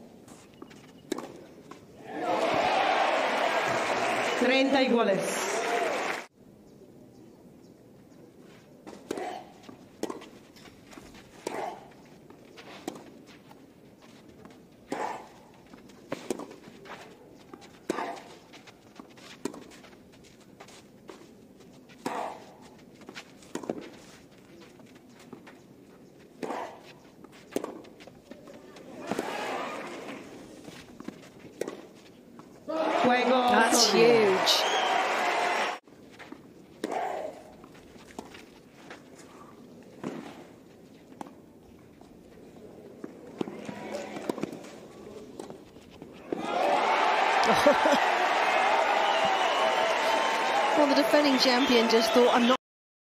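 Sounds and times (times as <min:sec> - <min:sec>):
rackets striking tennis balls: 0:00.3 - 0:02.8, 0:08.8 - 0:34.4, 0:36.2 - 0:41.4, 0:43.0 - 0:46.8
crowd cheering: 0:02.0 - 0:06.3, 0:28.8 - 0:30.2, 0:32.7 - 0:35.8, 0:43.4 - 0:44.6, 0:46.2 - 0:52.6.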